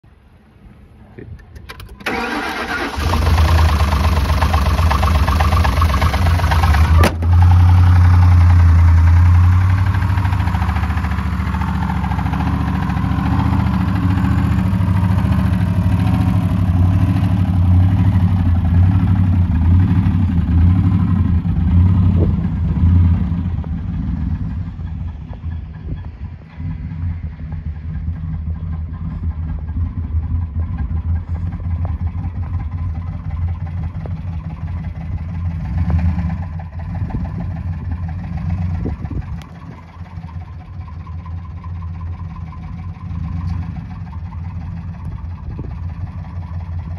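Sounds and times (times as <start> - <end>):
car engine idling: 0.2 - 46.9.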